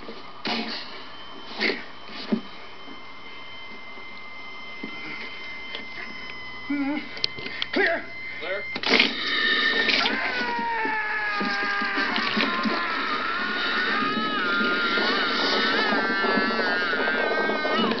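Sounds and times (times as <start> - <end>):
man screaming: 9.9 - 18.0.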